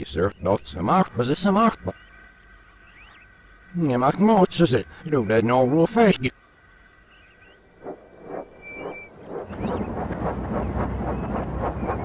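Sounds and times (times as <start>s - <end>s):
low rumble: 7.5s - 12.0s
steam locomotive chuffs reversed: 7.8s - 12.0s.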